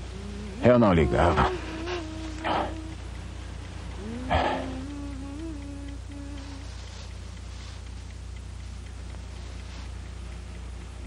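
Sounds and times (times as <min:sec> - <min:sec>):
man humming low note: 0:00.0 - 0:07.1.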